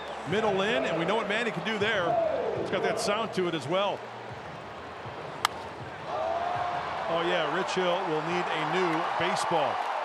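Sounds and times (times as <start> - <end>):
bat cracking against ball: 5.4 - 5.7.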